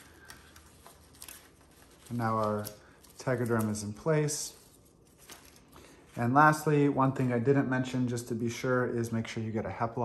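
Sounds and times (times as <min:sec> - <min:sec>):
film dressing crinkling: 0:00.0 - 0:06.8.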